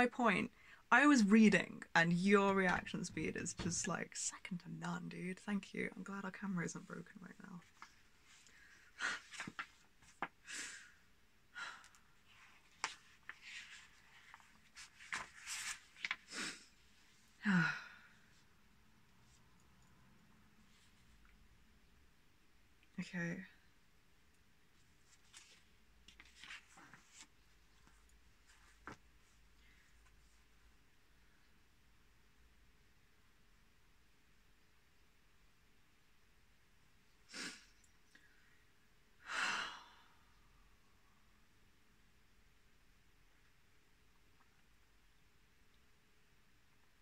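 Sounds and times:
person sighing: 17.4 - 18.4.

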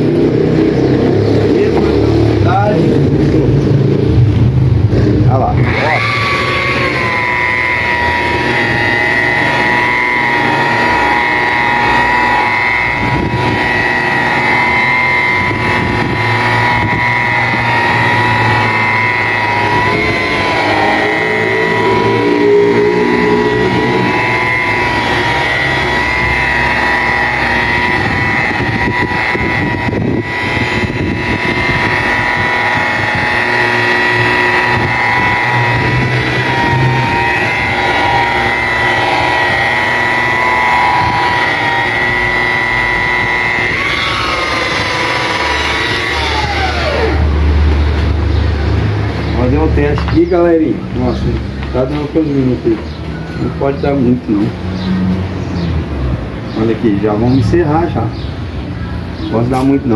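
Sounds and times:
rotary polisher motor whine: 0.0 - 4.2, 4.9 - 54.6.

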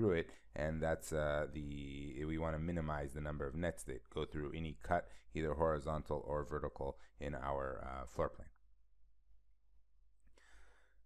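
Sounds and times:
soft breath: 10.2 - 11.0.

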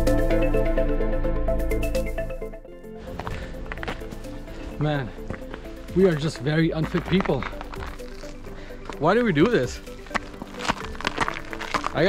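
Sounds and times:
heavy breathing: 2.9 - 6.1, 7.4 - 9.0
footsteps crunching on snow: 3.0 - 12.0.

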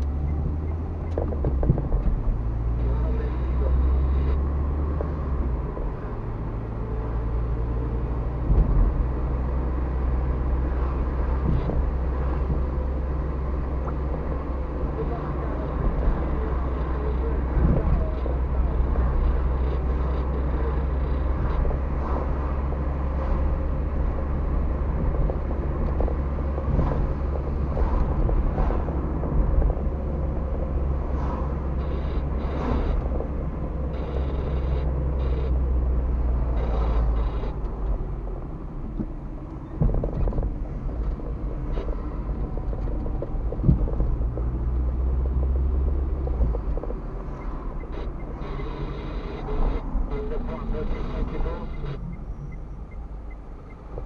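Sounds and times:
car engine and tyre drone: 0.0 - 54.0.

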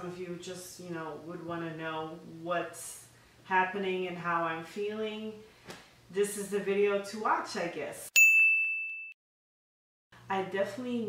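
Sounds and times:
bell-like ding chime: 8.2 - 9.2.

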